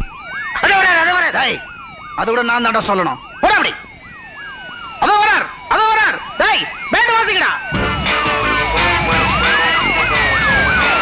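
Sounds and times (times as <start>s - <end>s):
siren yelping: 0.0s - 11.0s
slower falling siren tone: 7.6s - 11.0s.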